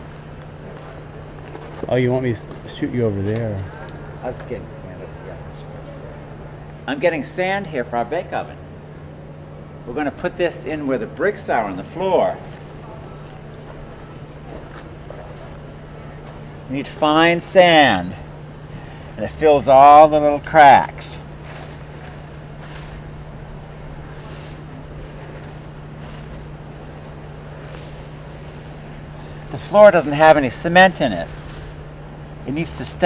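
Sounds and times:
outdoor background noise: 0.0 - 33.0
rumbling background: 0.0 - 33.0
steady low hum: 0.0 - 33.0.

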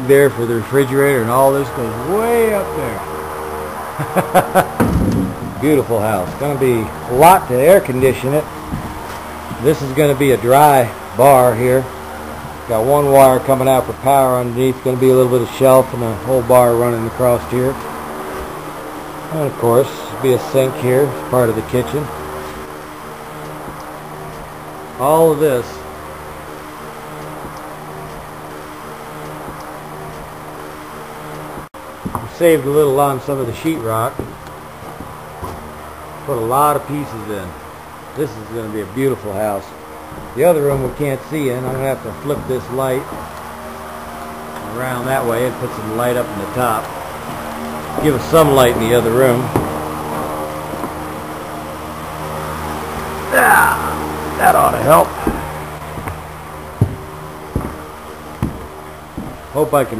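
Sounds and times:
low hum: 0.0 - 59.9.

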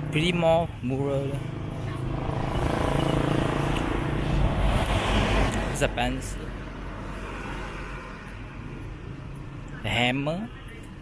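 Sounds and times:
vehicle engine and tyre noise passing: 0.0 - 11.0.

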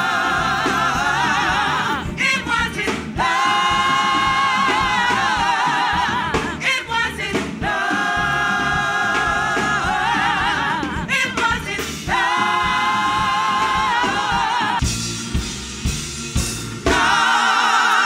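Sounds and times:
gospel group singing in harmony: 0.0 - 15.5, 16.8 - 18.0.

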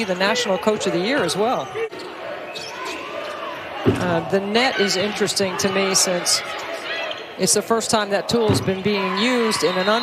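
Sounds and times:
court and room noise: 0.0 - 10.0
basketball thump: 3.8 - 4.4, 8.3 - 9.0.

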